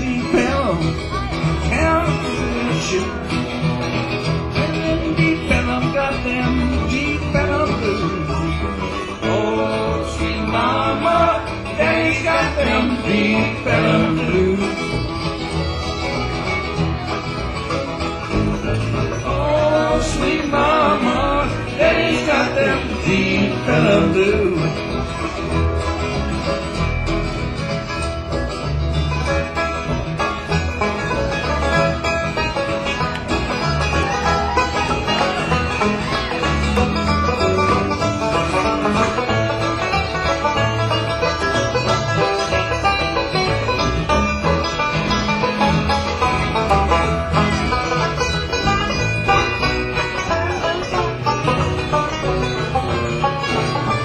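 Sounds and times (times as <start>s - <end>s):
plucked strings: 0.0s - 54.0s
steady bass line: 0.0s - 54.0s.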